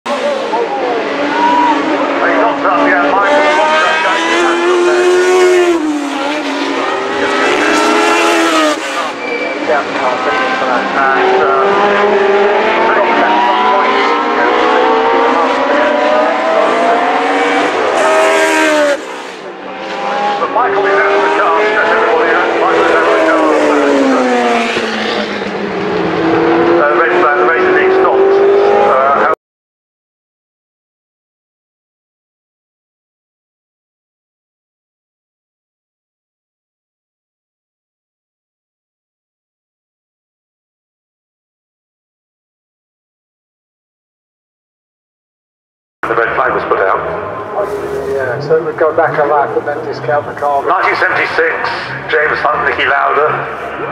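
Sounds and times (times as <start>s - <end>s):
racing car engines at high revs: 0.1s - 29.4s, 46.0s - 53.9s.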